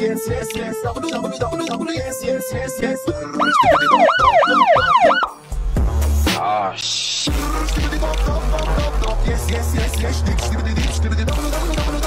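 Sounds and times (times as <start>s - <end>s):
music beat: 0.0s - 12.0s
police siren yelping: 3.2s - 5.4s.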